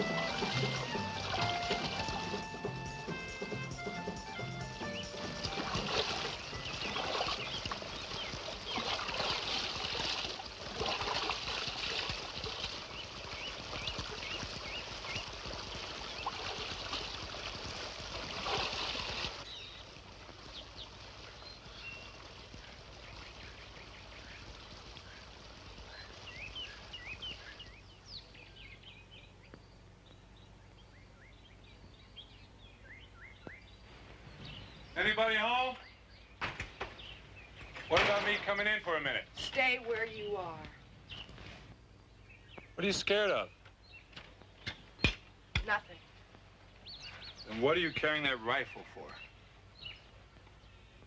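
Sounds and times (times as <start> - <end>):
water splashing and sloshing: 0.0 - 27.8, 36.4 - 41.7
small birds chirping: 0.0 - 51.0.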